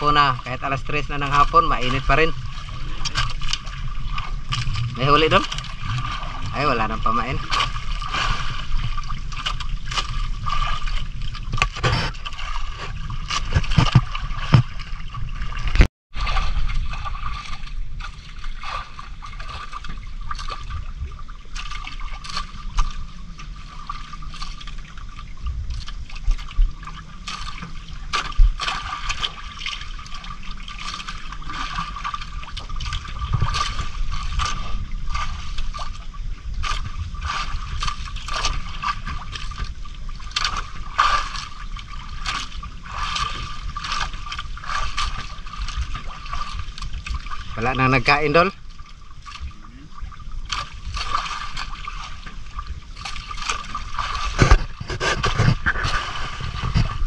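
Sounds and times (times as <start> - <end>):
water lapping against boat hull: 0.0 - 57.0.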